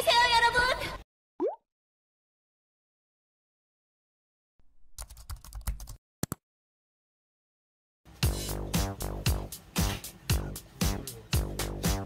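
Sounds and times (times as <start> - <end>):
computer keyboard typing: 5.0 - 6.4.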